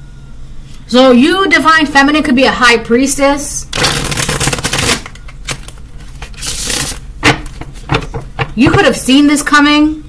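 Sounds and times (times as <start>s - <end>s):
cards being riffle-shuffled: 3.8s - 8.9s.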